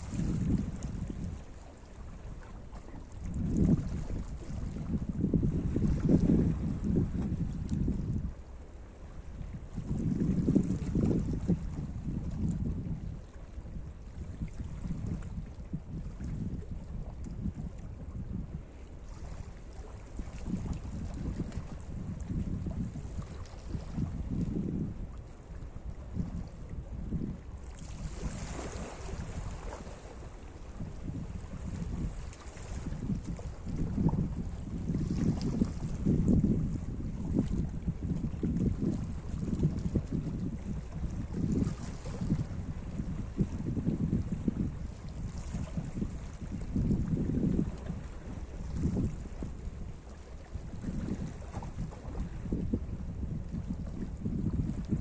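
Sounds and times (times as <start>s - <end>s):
wind on microphone: 0.0s - 55.0s
waves lapping over rocks: 27.7s - 36.3s.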